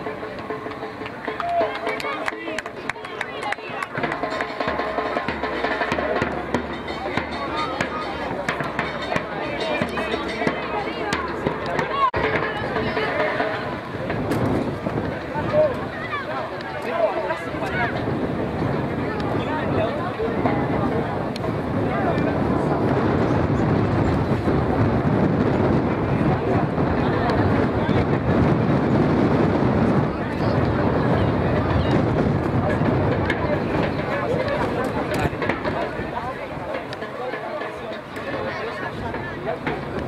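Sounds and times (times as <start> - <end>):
voices shouting and calling: 0.0 - 23.7, 30.0 - 40.0.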